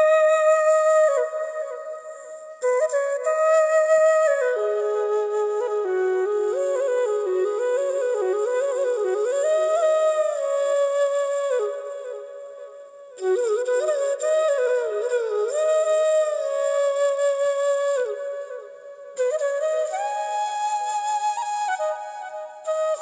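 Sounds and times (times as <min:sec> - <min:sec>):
slow flute melody: 0:00.0 - 0:23.0.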